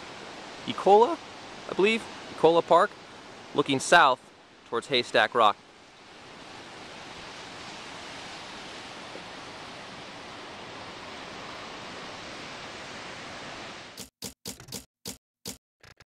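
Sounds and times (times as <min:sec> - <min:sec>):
distant ocean surf: 0:00.0 - 0:14.0
wind: 0:00.0 - 0:14.0
sharp clacks: 0:14.0 - 0:16.0.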